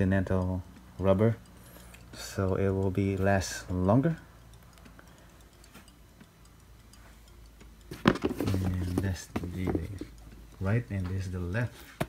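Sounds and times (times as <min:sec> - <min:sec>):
sneakers being handled: 0:07.9 - 0:10.2.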